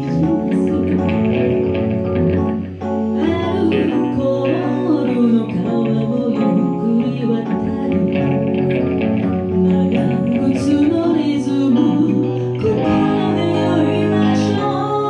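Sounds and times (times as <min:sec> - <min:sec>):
woman singing into microphone: 0:00.0 - 0:02.2, 0:03.0 - 0:15.0
electric guitar: 0:00.0 - 0:15.0
keyboard: 0:00.0 - 0:15.0.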